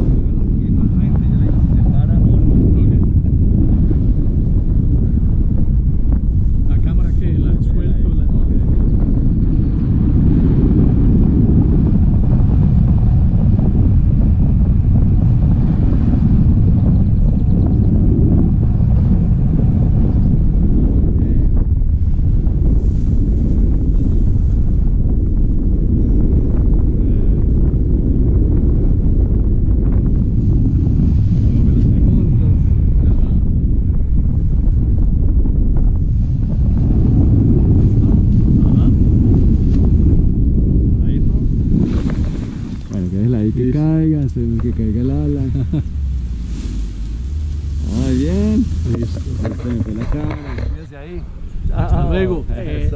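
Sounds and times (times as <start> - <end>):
wind buffeting microphone: 0.0 - 52.9.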